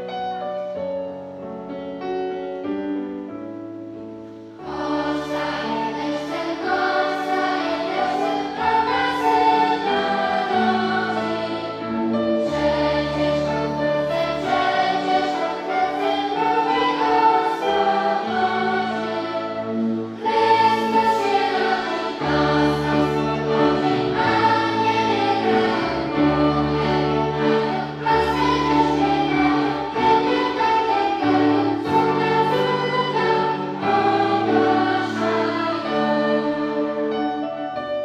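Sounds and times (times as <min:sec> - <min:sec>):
flutes violins and keyboard: 0:03.1 - 0:38.0
children's choir singing: 0:04.3 - 0:38.0.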